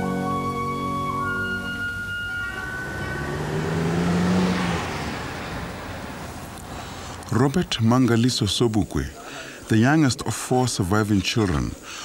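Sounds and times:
car driving past: 0:01.8 - 0:07.6.

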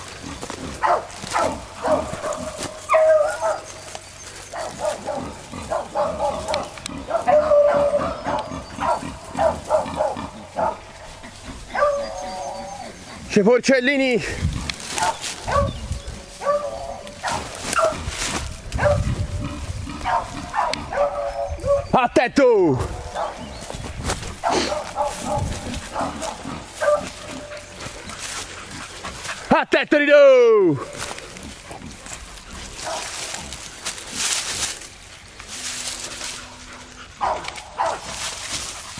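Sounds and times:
brush rustling: 0:00.0 - 0:21.9, 0:22.6 - 0:38.9
dog baying and howling: 0:00.8 - 0:03.8, 0:04.5 - 0:13.2, 0:15.0 - 0:18.1, 0:18.7 - 0:19.1, 0:20.0 - 0:22.0, 0:24.4 - 0:27.8, 0:36.0 - 0:38.9.

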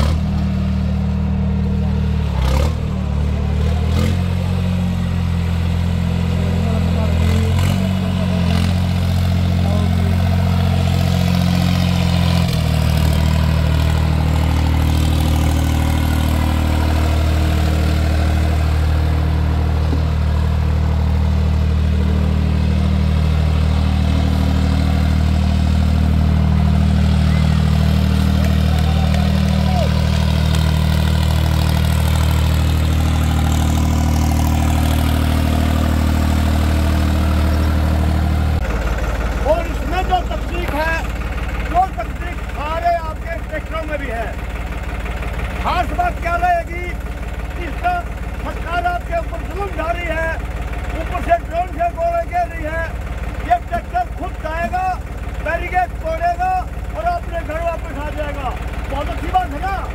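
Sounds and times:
tractor diesel engine running: 0:00.0 - 0:59.9.

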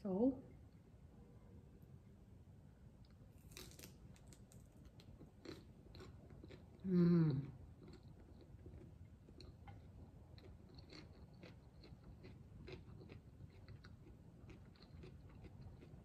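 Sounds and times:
chewing raw vegetables: 0:03.4 - 0:16.0.

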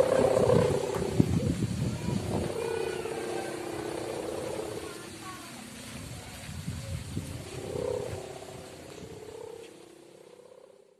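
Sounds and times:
wind rumble on microphone: 0:00.0 - 0:10.6
kite hummer buzzy drone: 0:00.0 - 0:10.9.

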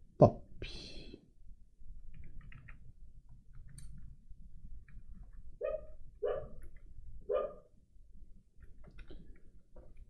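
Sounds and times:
faint keyboard clicks: 0:02.1 - 0:04.1, 0:08.6 - 0:10.0
dog barking: 0:05.6 - 0:06.6, 0:07.3 - 0:07.7.

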